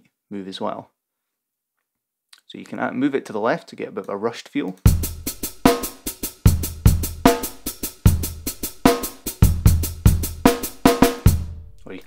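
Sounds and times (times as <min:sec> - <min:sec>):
programmed drum beat: 0:04.8 - 0:12.0.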